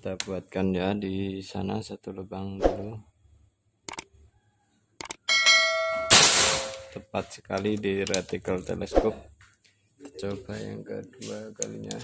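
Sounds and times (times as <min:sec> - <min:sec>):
ringing bell chime: 0:05.3 - 0:06.2.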